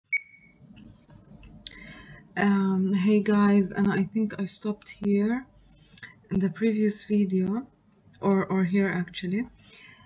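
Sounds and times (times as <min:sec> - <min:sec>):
short electronic beep: 0:00.0 - 0:00.6
faint background noise: 0:00.1 - 0:10.0.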